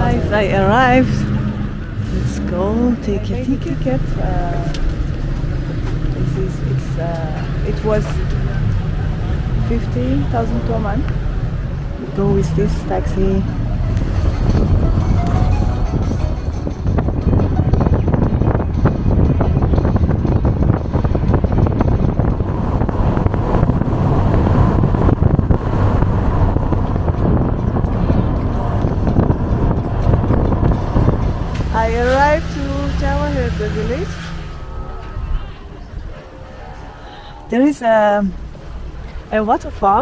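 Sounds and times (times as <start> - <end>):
road and wind noise in car: 0.0 - 40.0
sliding pitch melody over drone: 13.8 - 18.6, 24.9 - 37.6.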